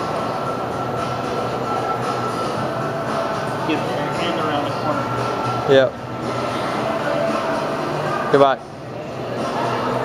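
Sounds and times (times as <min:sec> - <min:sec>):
ventilation hum: 0:00.0 - 0:10.0.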